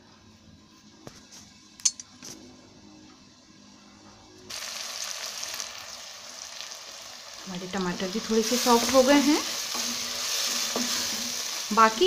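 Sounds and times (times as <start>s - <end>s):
food sizzling in oil: 4.5s - 12.0s.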